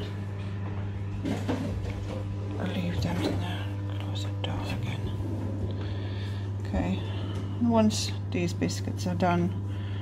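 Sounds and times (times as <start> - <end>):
oven humming: 0.0 - 10.0.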